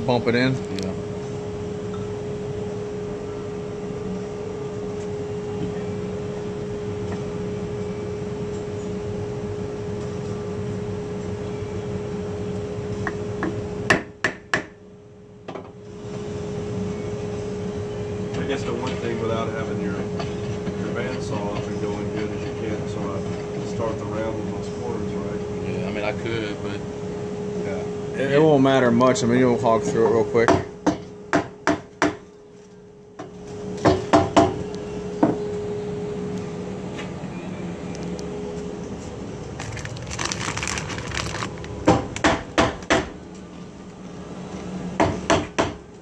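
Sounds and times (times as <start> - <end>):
dust collector humming: 15.9 - 31.4, 32.6 - 45.1.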